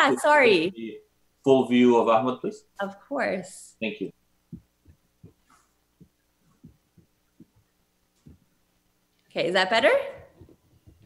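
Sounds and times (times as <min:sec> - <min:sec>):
soft dull thumps: 0:04.5 - 0:08.6, 0:10.1 - 0:11.0.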